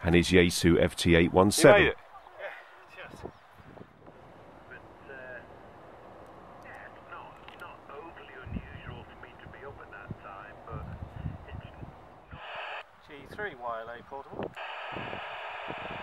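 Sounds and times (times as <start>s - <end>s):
wind buffeting microphone: 3.0s - 4.2s, 8.2s - 12.5s, 13.2s - 16.0s
thin voice from radio speaker: 6.8s - 12.8s
receiver hiss: 11.5s - 13.0s, 14.5s - 16.0s.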